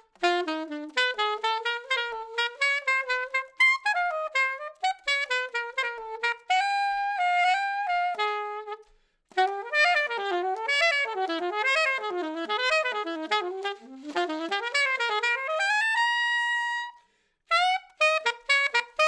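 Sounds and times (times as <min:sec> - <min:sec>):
alto saxophone solo: 0:00.0 - 0:19.0.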